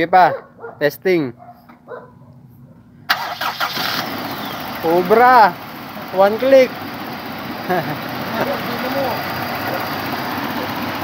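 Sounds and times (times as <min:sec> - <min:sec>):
car engine cranking and starting: 0:03.1 - 0:11.0.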